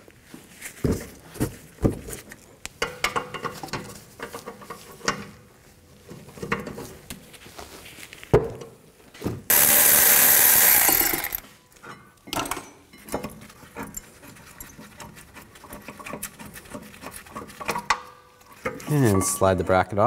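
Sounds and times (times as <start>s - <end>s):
harsh power tool burst: 9.5s - 11.5s.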